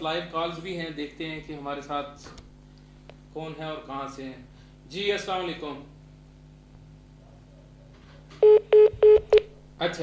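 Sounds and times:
short telephone beeps: 8.4s - 9.4s.

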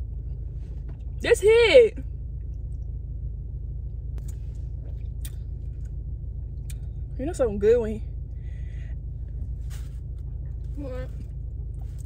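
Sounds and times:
car running low rumble: 0.0s - 12.0s.

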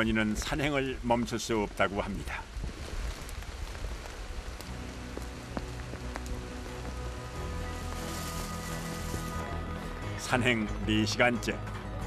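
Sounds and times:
steady rain falling: 0.0s - 10.4s
soft sustained background music: 4.5s - 12.0s.

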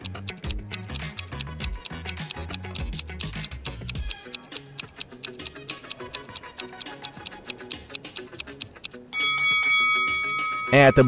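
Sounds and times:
fast clock ticking: 0.0s - 9.1s
light background music: 0.0s - 11.0s
steady ringing tone: 9.1s - 11.0s.

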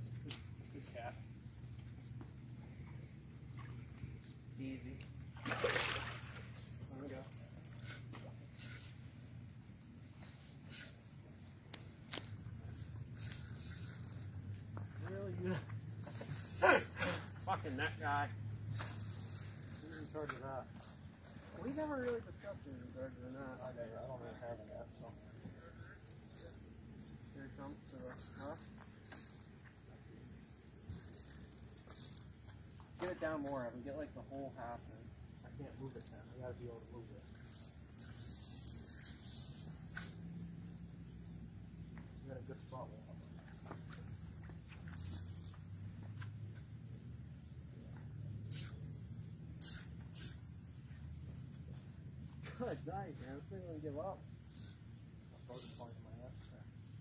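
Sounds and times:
crickets trilling: 0.0s - 57.0s.

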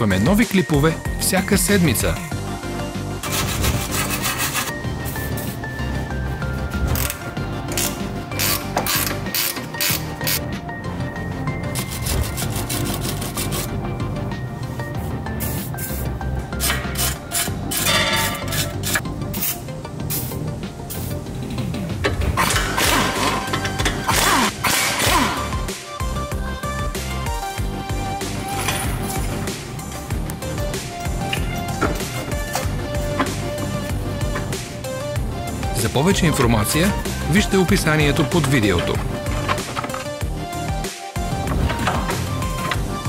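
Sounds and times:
background music: 0.0s - 43.0s
wire brush scrubbing metal: 3.2s - 4.7s
electronic music with steady beat: 22.9s - 43.0s.

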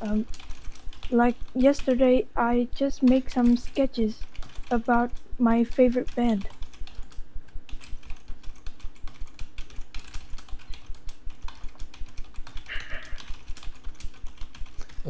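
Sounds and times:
typing on a keyboard: 0.0s - 2.0s, 3.0s - 5.2s, 5.9s - 15.0s.

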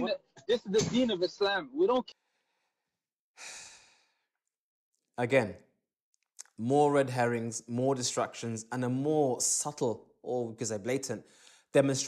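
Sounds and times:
person sighing: 3.4s - 4.0s.

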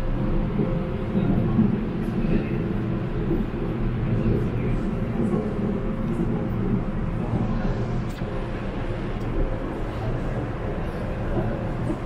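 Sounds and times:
train rumbling in motion: 0.0s - 12.0s.

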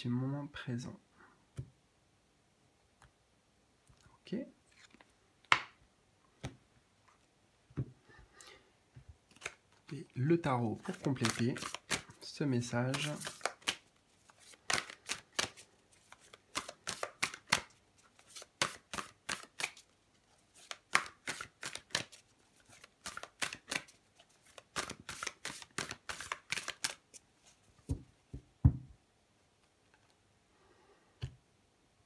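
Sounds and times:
cards shuffling: 9.3s - 10.0s, 10.6s - 28.0s
deck knocking on table: 27.9s - 28.9s.

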